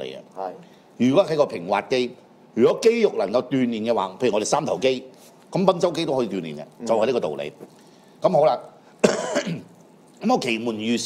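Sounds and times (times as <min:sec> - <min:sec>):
man talking: 0:00.0 - 0:08.8, 0:10.2 - 0:11.0
man clearing throat: 0:09.0 - 0:09.7.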